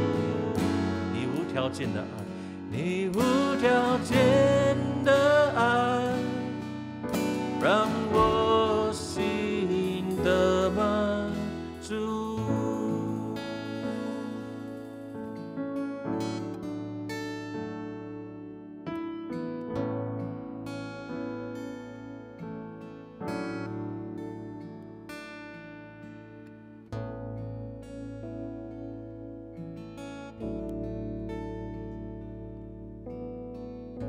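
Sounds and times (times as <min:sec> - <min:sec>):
deep bass notes: 0:00.0 - 0:13.4
stage piano chords: 0:00.0 - 0:26.1, 0:27.3 - 0:34.0
acoustic guitar strumming: 0:00.0 - 0:34.0.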